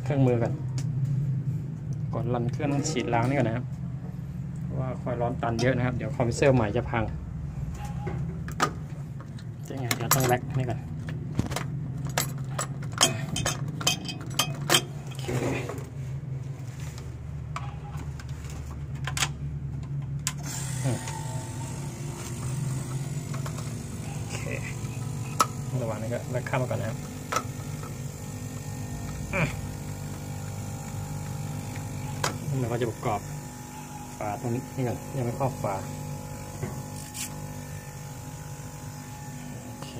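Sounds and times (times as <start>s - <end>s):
sharp clicks of hoses and gauges: 7.7s - 15.3s, 24.5s - 33.0s
vacuum pump motor humming: 19.8s - 39.9s.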